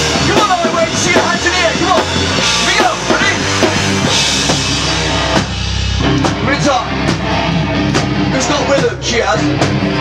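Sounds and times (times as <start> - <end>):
heavy rock band playing: 0.0 - 10.0
pounding drum kit with cymbals: 0.0 - 10.0.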